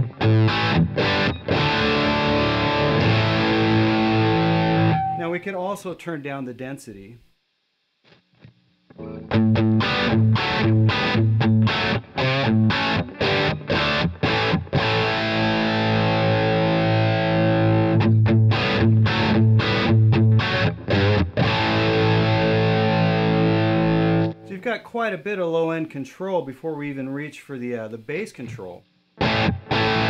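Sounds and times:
distorted electric guitar chords: 0.0 - 5.4, 8.1 - 24.5, 29.1 - 30.0.

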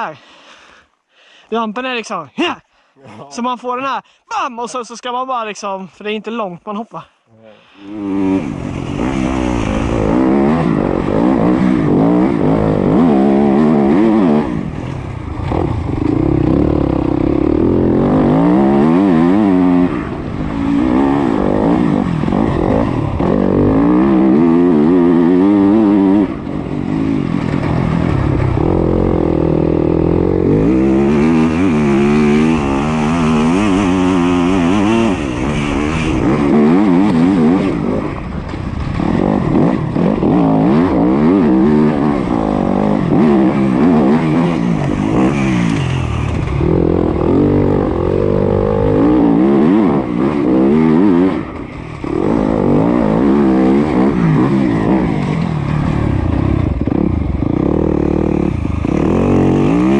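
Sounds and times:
dirt bike engine revving: 7.8 - 59.9.

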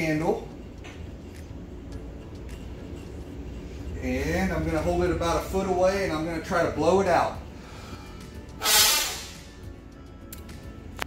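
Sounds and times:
faint background music: 0.0 - 11.0
breath blown through face mask: 7.6 - 9.6.

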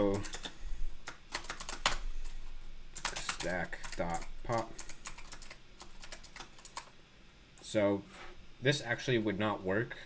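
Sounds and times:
typing on computer keyboard: 0.0 - 2.4, 3.0 - 6.9.

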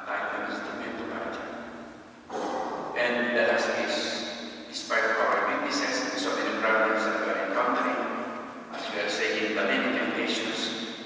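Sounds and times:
man speaking into a microphone: 0.0 - 1.7, 2.3 - 10.8.

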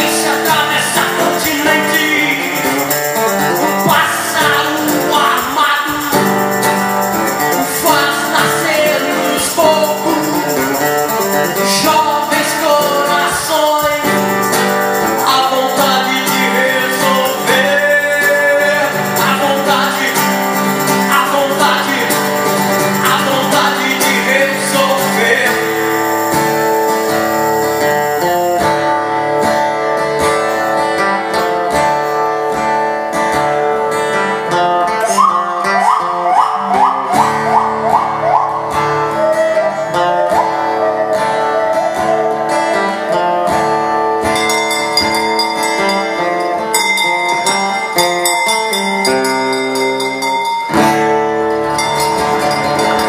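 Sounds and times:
high ticking rattle vocal effect: 0.0 - 32.2, 34.5 - 53.0
blues acoustic guitar: 0.0 - 53.0.

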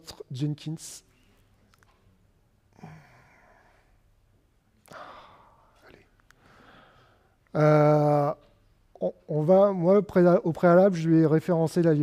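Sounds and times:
faint exhale: 4.9 - 5.7, 6.4 - 7.4.

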